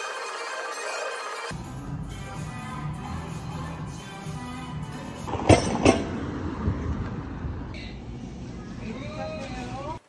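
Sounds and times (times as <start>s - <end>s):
weight stack plates clanking: 5.3s - 6.4s.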